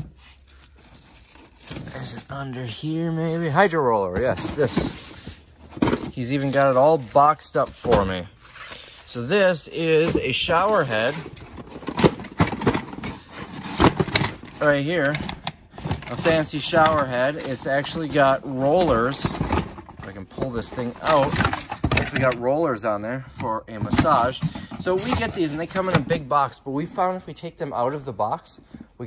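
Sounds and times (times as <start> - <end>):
packages rustling and scraping: 0.0 - 22.4, 23.6 - 27.3.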